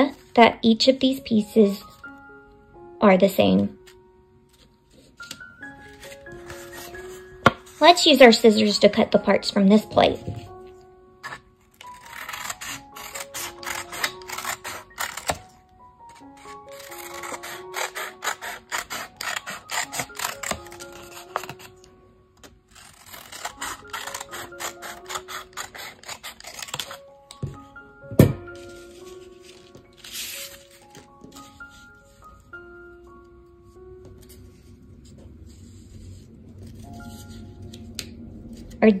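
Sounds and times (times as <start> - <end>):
light background music: 0.0 - 39.0
scissors cutting paper plate: 11.2 - 15.4, 16.4 - 21.8, 22.8 - 27.0.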